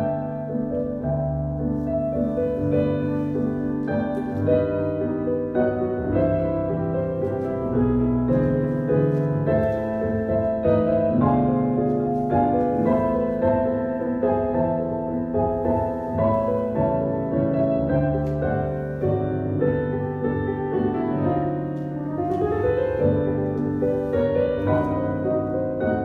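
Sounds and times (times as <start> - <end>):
solo piano music: 0.0 - 26.0.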